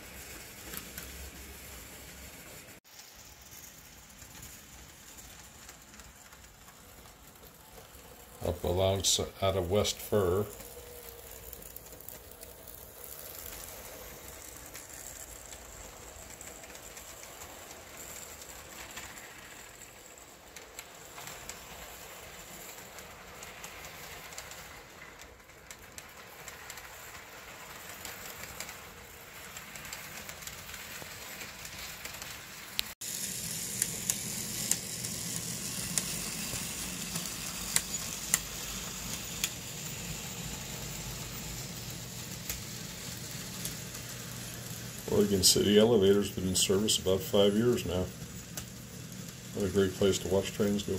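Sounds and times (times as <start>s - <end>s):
model train low hum: 0.0s - 50.9s
model train wheels hissing on rail: 0.0s - 50.9s
model train wheel clicks: 3.3s - 50.9s.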